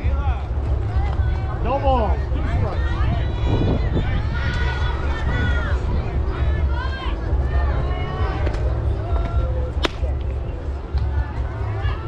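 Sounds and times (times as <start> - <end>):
softball smacking into glove: 9.8 - 10.1.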